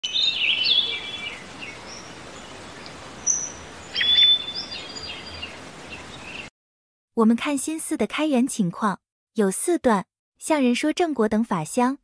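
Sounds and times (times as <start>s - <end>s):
birds chirping: 0.0s - 6.5s
steady background hiss: 0.1s - 6.5s.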